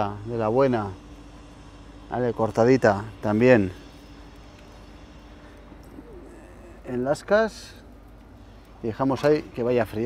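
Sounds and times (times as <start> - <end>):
low steady hum: 0.0 - 10.0
faint wavering bird call: 5.8 - 7.1.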